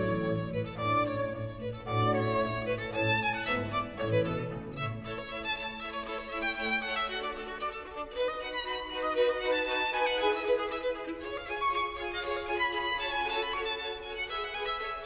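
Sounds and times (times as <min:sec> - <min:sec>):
instrumental music with violin: 0:00.0 - 0:15.0.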